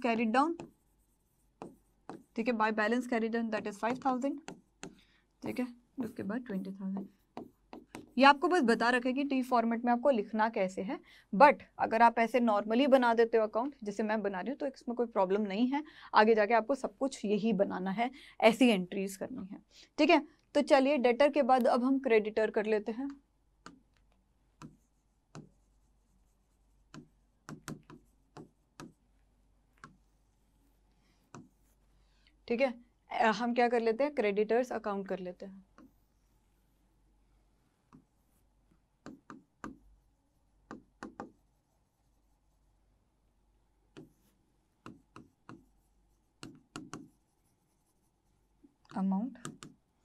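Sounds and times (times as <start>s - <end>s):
chalk strokes on blackboard: 0.0s - 9.0s, 24.6s - 29.0s, 29.7s - 32.0s, 35.1s - 37.1s, 37.8s - 42.8s, 44.0s - 48.6s
chalk tapping on blackboard: 0.1s - 8.9s, 23.1s - 31.8s, 35.7s - 37.0s, 37.9s - 42.7s, 43.9s - 48.3s, 48.9s - 49.8s
writing tip tapping on board: 0.5s - 0.8s, 1.6s - 2.4s, 3.6s - 5.0s, 6.9s - 8.2s, 26.9s - 29.0s, 39.0s - 39.9s, 40.6s - 41.4s, 44.8s - 45.7s, 46.4s - 47.2s.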